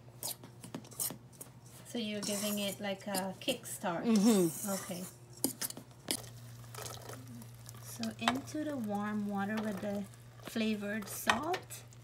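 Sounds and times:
wet squishing of cornmeal: 5.4s - 12.0s.

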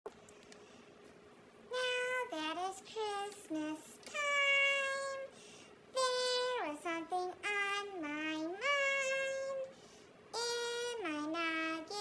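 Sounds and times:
high-pitched chipmunk singing voice: 10.4s - 12.0s.

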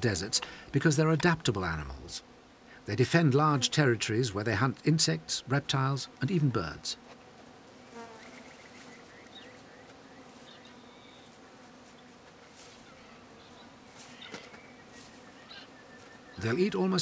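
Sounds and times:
insects buzzing: 0.0s - 17.0s.

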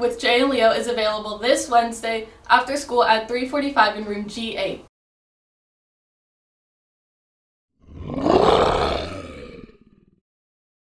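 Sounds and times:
big cat roar: 7.8s - 10.2s.

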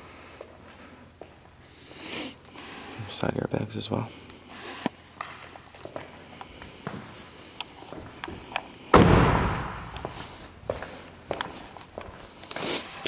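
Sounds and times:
car door slamming: 8.9s - 9.9s.

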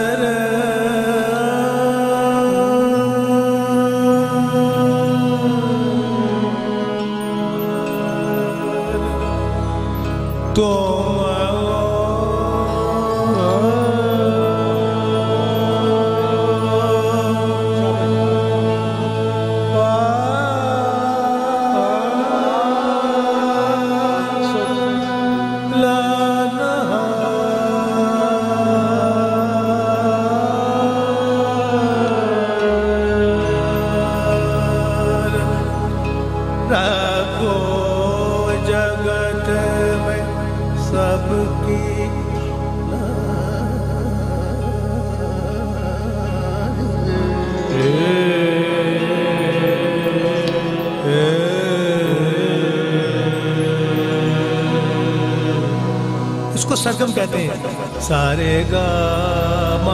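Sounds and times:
man singing long held notes: 0.0s - 59.9s
steady drone: 0.0s - 59.9s.

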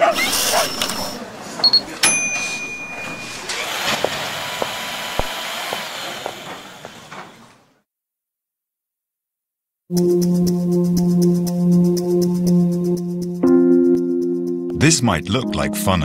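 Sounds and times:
short steady beeps: 1.6s - 3.5s.

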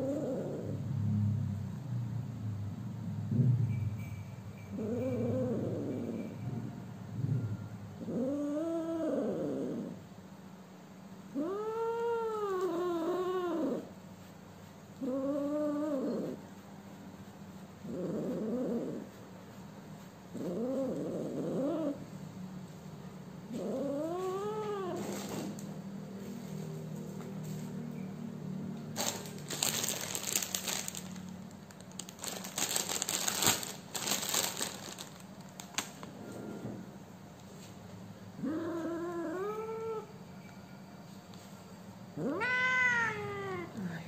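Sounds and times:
kitten meowing: 42.2s - 43.8s.

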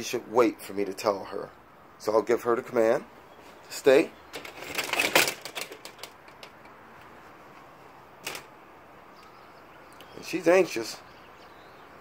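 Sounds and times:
sharp door click: 4.3s - 6.6s, 8.2s - 8.5s
door latch clicking and rattling: 4.3s - 6.7s, 8.2s - 8.5s.

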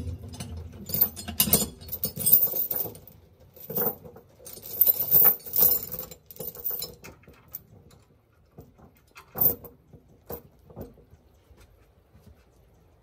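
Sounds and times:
steel chains rattling: 0.9s - 7.0s.

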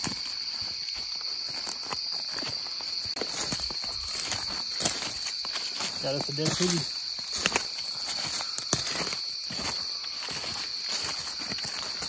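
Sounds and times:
footsteps through grass and brush: 0.0s - 12.0s
night insects chorus: 0.0s - 12.0s.

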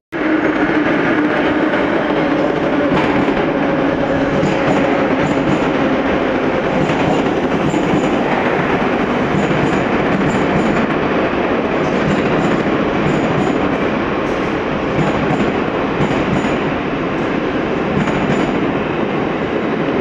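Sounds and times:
train wheels rumbling on rail: 0.1s - 20.0s.

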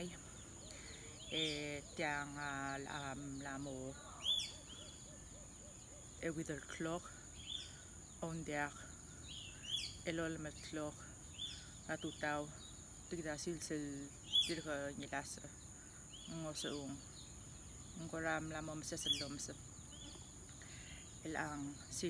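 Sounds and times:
birds chirping: 0.0s - 22.0s.

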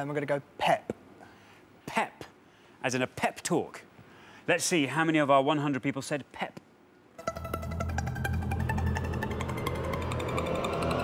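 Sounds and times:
game show countdown music: 7.2s - 11.0s.

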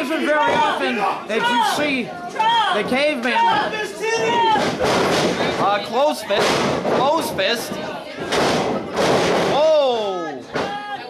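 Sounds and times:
body crashing onto ring mat: 8.2s - 9.6s.

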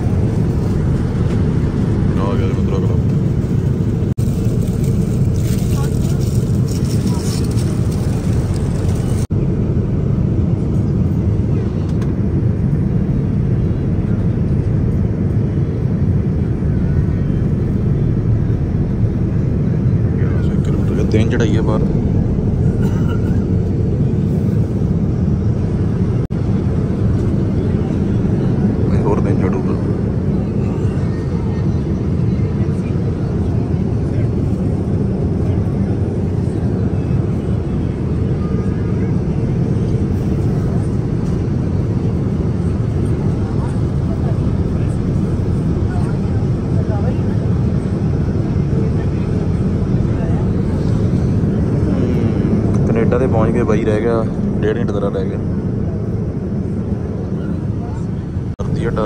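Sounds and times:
airliner cabin engine rush: 0.0s - 59.0s
faint voices: 0.0s - 59.0s.

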